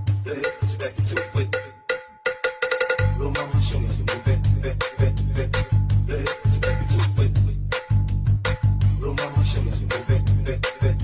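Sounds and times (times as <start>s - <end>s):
cowbell-like percussion roll: 0.0s - 5.0s.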